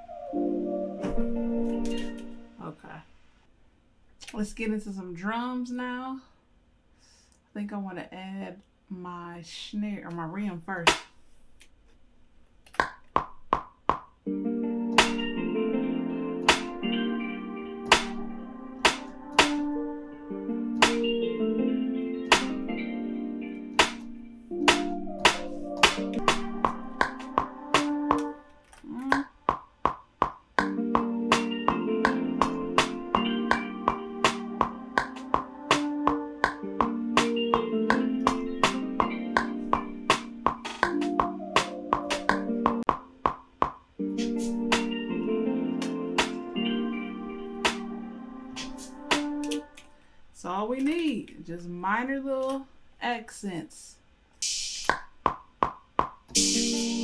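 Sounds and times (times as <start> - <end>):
plucked guitar melody loop: 1.0 - 2.5, 14.3 - 29.2, 30.6 - 48.0.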